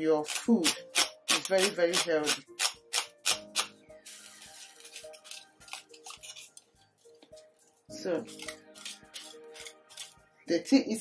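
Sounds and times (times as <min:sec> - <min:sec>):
soft background music: 0:00.0 - 0:11.0
metal spoon stirring in a pot: 0:00.2 - 0:07.1, 0:08.2 - 0:10.2.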